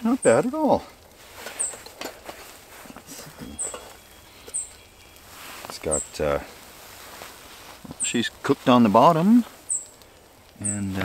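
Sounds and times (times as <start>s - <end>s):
metal spatula scraping grill grate: 1.1s - 8.2s.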